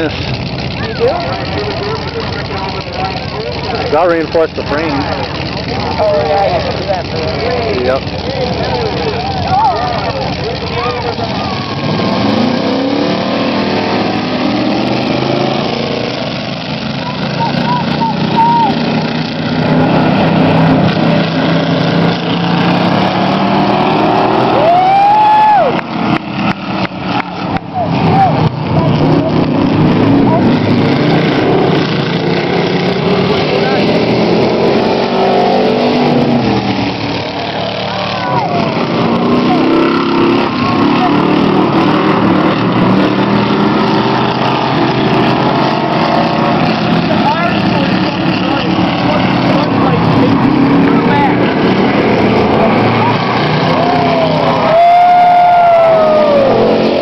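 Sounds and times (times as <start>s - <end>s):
racing car engines revving: 0.0s - 57.0s.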